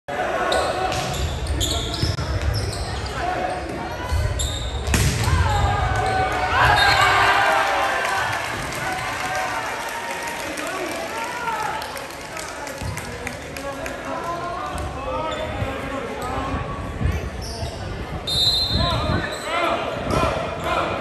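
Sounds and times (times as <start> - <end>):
sneakers squeaking on gym floor: 0.5 - 7.0, 17.1 - 19.5
people shouting and cheering: 5.1 - 12.8.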